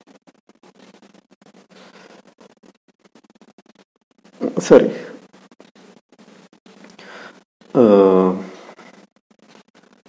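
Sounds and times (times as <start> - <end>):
man speaking: 4.4 - 5.2, 7.8 - 8.6.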